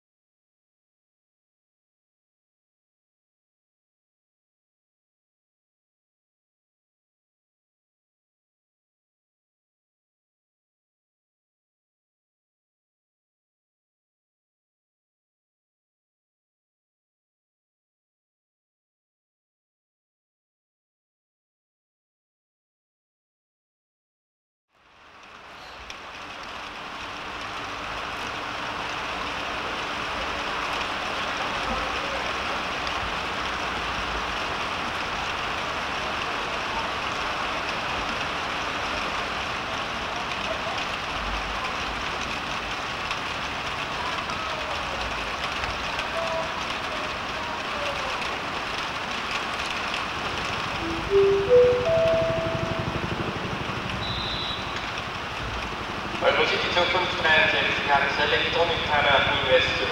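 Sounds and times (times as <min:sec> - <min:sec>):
railway station ambience: 0:24.7 - 0:59.9
rising chime: 0:50.8 - 0:53.2.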